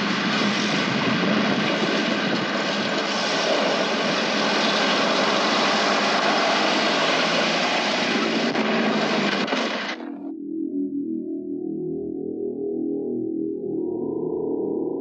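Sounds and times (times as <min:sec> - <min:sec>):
jeep engine running hard: 0:00.0 - 0:10.1
tyres on dirt: 0:00.3 - 0:10.1.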